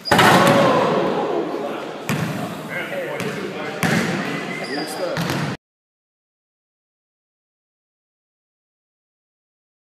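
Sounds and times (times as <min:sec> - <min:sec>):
basketball bouncing on wooden floor: 0:02.1 - 0:02.3, 0:03.2 - 0:04.2, 0:05.2 - 0:05.5.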